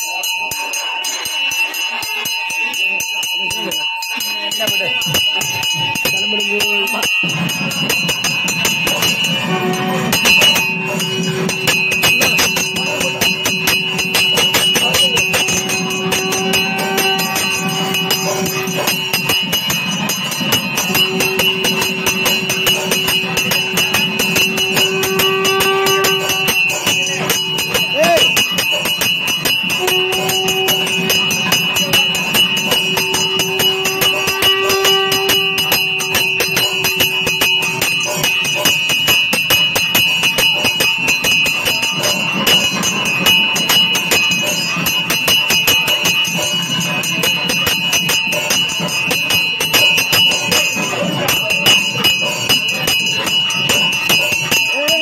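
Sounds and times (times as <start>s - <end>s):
rapid drumming: 0.0s - 55.0s
ringing cymbals: 0.0s - 55.0s.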